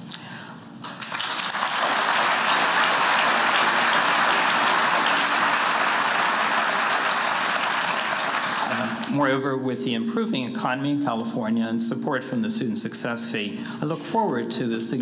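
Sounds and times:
audience applauding: 0.8s - 9.2s.

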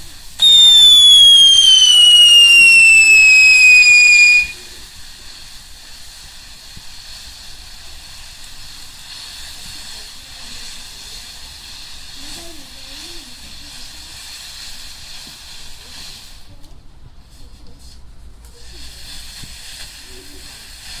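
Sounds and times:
fountain firework hissing: 0.0s - 21.0s
firework whistle: 0.2s - 4.8s.

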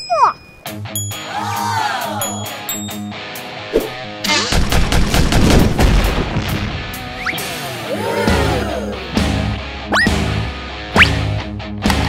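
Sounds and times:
background music: 0.0s - 5.4s, 6.3s - 12.0s
machine-gun fire: 4.5s - 6.8s.

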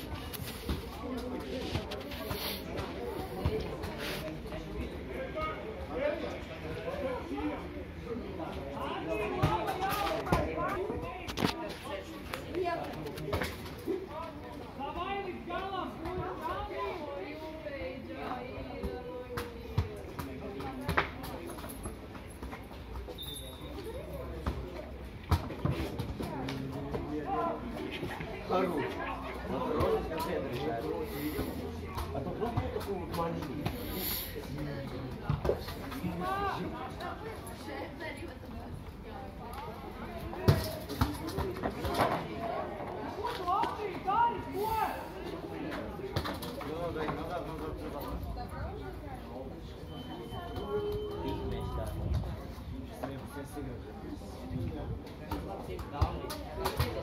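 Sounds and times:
people talking and calling: 0.0s - 57.0s.

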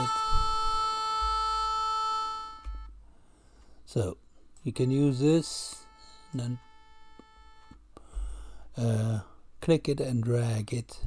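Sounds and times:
held trumpet note: 0.0s - 3.0s, 4.0s - 7.9s.

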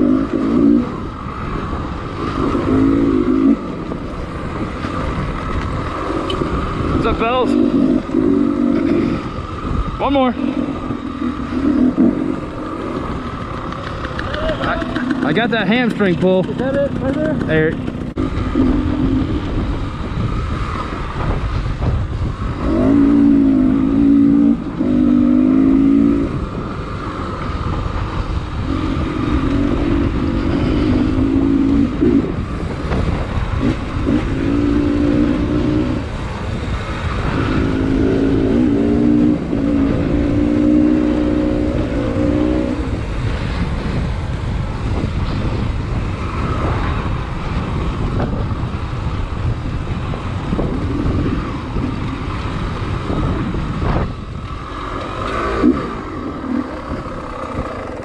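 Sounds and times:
dirt bike engine revving: 0.0s - 48.4s, 49.6s - 58.0s
wind rumble on microphone: 0.0s - 58.0s.

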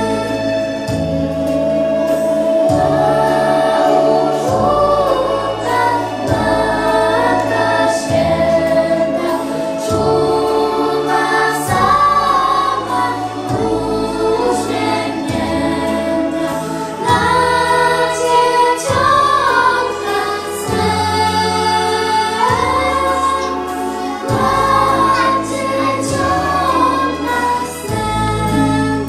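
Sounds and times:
children's choir singing: 0.0s - 29.0s
instrumental accompaniment: 0.0s - 29.0s.

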